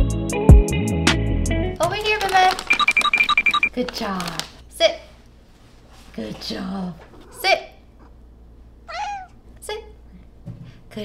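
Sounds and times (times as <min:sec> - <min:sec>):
cat meowing: 0:08.9 - 0:09.4.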